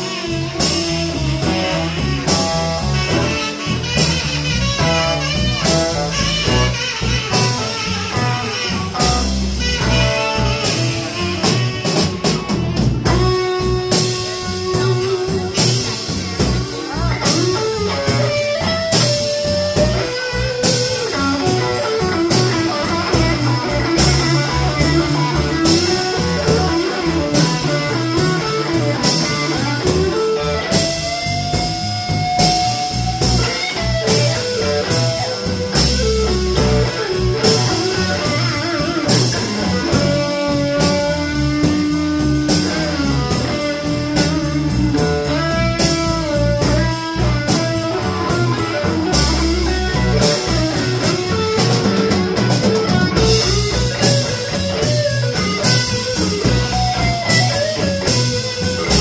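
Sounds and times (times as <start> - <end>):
bass guitar: 0.0 - 59.0
drum kit steady beat: 0.0 - 59.0
electric guitar: 0.0 - 59.0.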